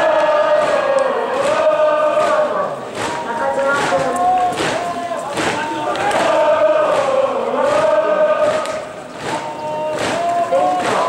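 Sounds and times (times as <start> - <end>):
crowd chanting a cheer: 0.0 - 11.0.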